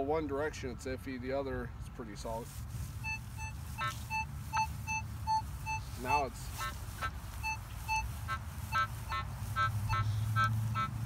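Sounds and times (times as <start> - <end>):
metal detector beeps: 3.0 - 6.7, 7.4 - 10.9.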